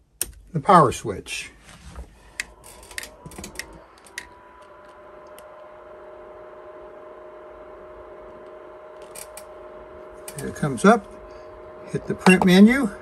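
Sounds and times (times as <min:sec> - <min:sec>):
cooling fans humming: 0:00.0 - 0:13.0.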